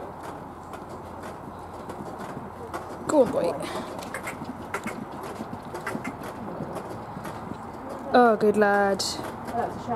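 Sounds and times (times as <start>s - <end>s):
horse hoofbeats on grass: 0.0s - 9.9s.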